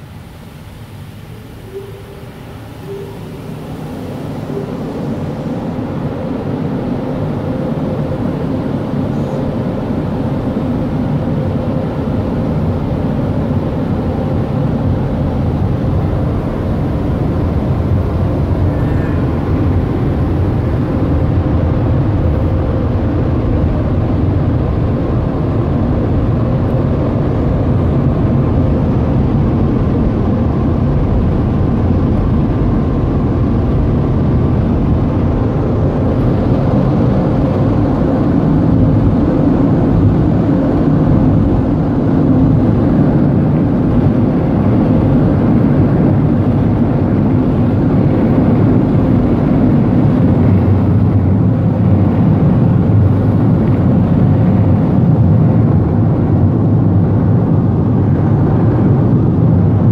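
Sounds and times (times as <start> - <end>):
car wash dryer blowers: 0.0 - 59.9.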